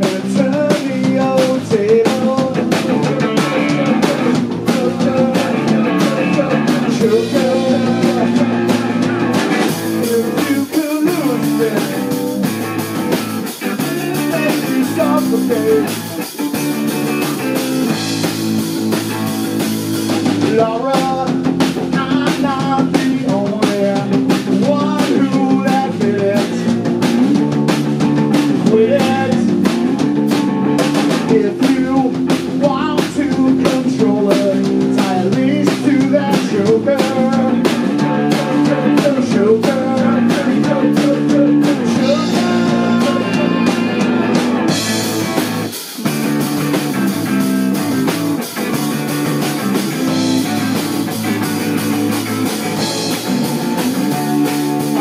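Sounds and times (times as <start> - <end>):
electric bass: 0.0 - 55.0
electric guitar: 0.0 - 55.0
fast drum beat: 0.0 - 55.0.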